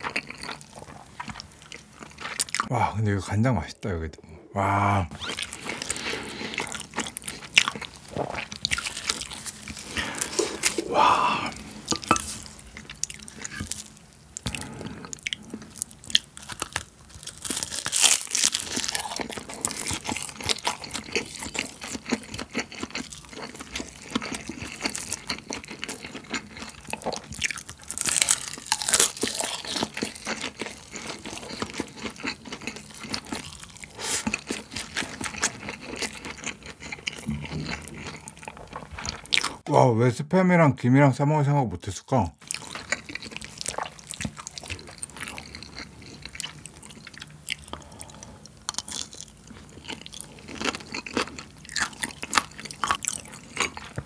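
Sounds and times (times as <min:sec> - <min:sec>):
chewing food: 0:00.0 - 0:02.7, 0:05.2 - 0:39.6, 0:42.4 - 0:54.0
seaweed crunching: 0:15.8 - 0:21.5, 0:27.4 - 0:36.2.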